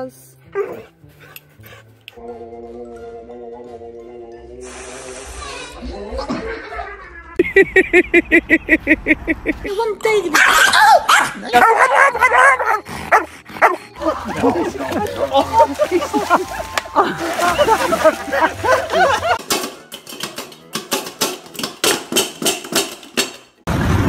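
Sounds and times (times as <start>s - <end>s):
dogs barking: 10.3s - 16.7s
people's voices: 14.0s - 19.4s.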